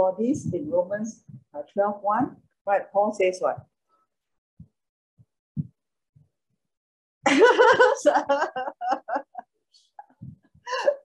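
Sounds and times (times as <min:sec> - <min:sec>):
soft low thumps of handled objects: 0:04.6 - 0:06.3, 0:10.2 - 0:10.7.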